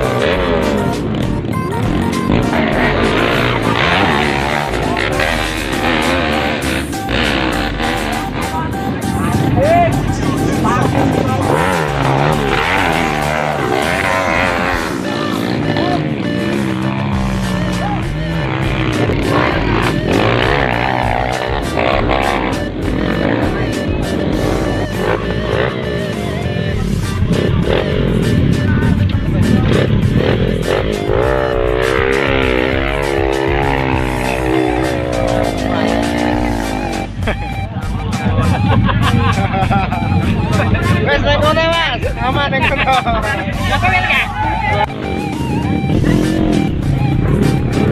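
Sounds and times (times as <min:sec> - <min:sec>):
crowd voices: 0:00.0 - 0:47.9
motorcycle engines revving: 0:00.0 - 0:47.9
music: 0:00.0 - 0:47.9.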